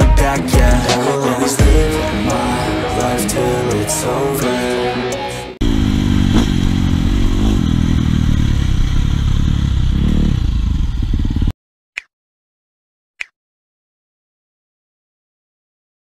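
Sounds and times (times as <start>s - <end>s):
dirt bike engine revving: 5.6s - 11.5s.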